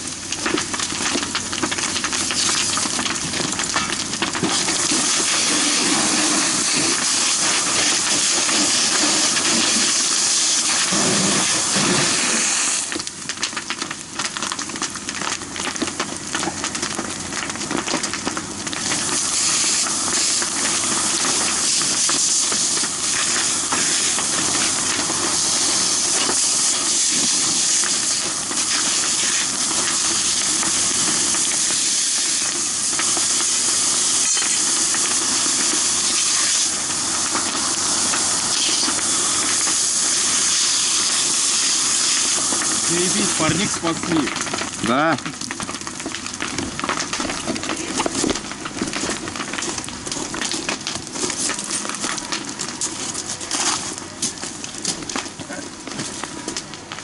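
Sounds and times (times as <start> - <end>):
fire hose spraying water: 0.0 - 57.0.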